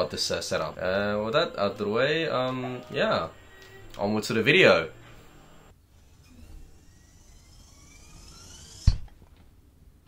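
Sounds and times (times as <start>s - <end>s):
rising whoosh: 6.3s - 9.0s.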